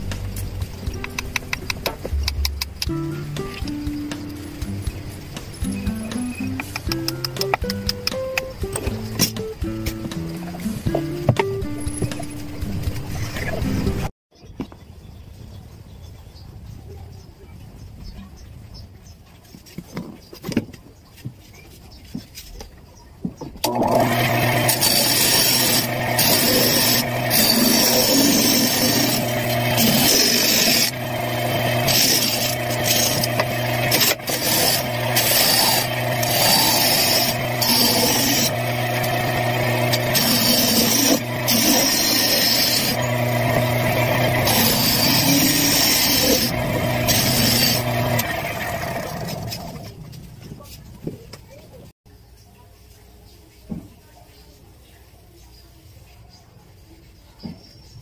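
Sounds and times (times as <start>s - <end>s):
disc sander grinding wood: 23.7s - 49.9s.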